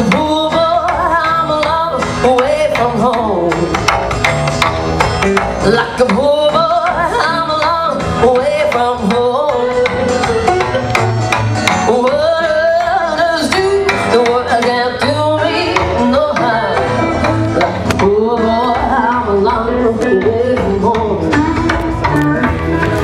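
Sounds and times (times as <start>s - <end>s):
electric guitars bending notes: 0.0s - 23.0s
rockabilly band playing: 0.0s - 23.0s.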